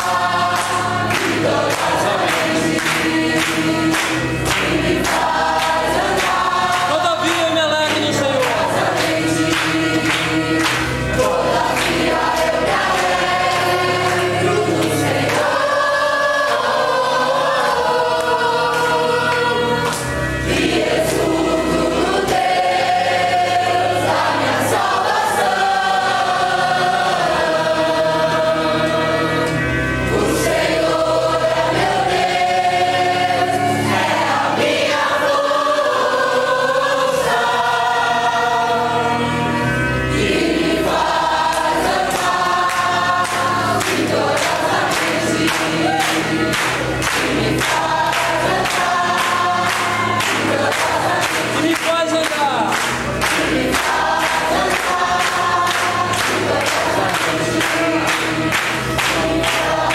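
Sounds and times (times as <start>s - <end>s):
congregation singing worship song: 0.0s - 59.9s.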